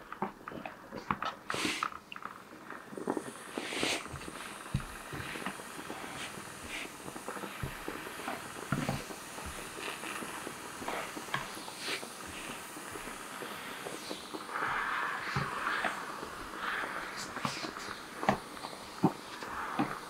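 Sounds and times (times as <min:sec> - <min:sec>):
garment steamer hissing: 0:00.0 - 0:20.0.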